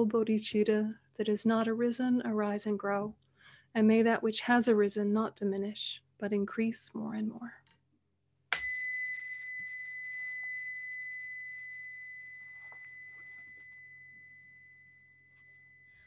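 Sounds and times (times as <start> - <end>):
small bell ringing: 8.5 - 16.0.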